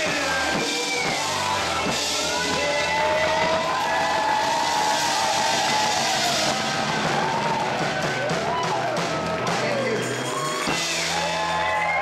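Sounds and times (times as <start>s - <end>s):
crowd noise: 0.0s - 12.0s
live band playing: 0.0s - 12.0s.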